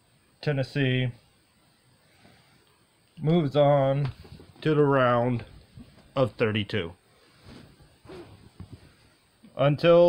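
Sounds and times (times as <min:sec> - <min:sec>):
soft handling rustles: 0:04.0 - 0:06.5, 0:07.1 - 0:09.3.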